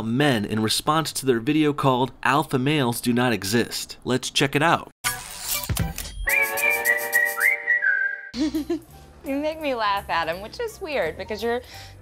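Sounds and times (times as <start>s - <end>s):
whistled melody: 6.2s - 8.4s.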